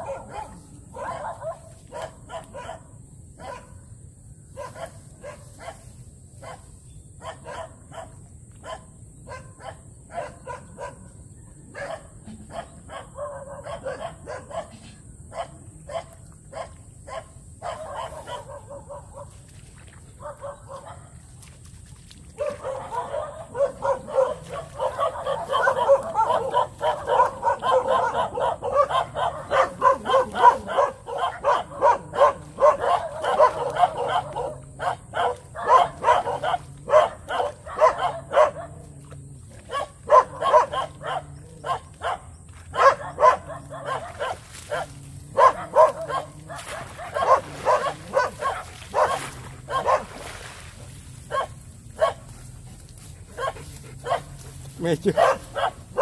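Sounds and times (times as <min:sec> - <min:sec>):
dogs barking: 0:00.0 - 0:03.9, 0:04.5 - 0:19.4, 0:20.2 - 0:21.2, 0:22.4 - 0:56.0.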